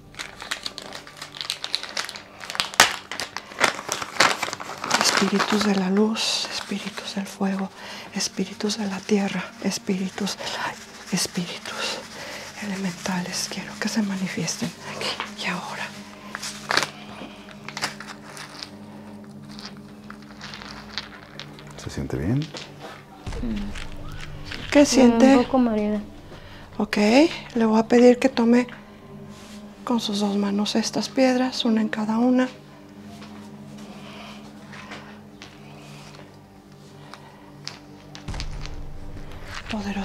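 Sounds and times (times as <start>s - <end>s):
crinkling and crackling by hand: 0.0s - 31.5s, 32.4s - 40.0s
low background music drone: 0.0s - 40.0s.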